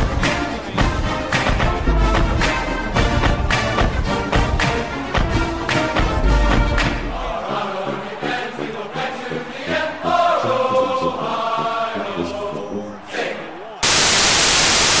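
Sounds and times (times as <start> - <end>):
voices chanting: 0.0 - 13.8
television static hiss: 13.8 - 15.0.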